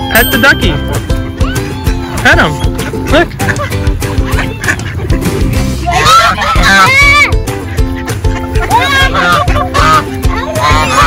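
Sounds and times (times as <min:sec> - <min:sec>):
background music with held notes: 0:00.0 - 0:11.0
duck quacks: 0:02.8 - 0:11.0.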